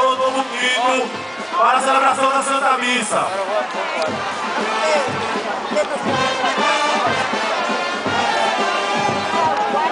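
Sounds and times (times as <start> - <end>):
brass instruments melody: 0.0 - 9.9.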